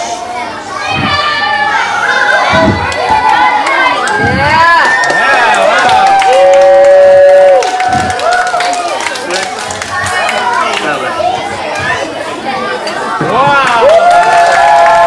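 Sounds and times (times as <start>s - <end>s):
children shouting and cheering: 0.6s - 12.2s, 13.7s - 15.0s.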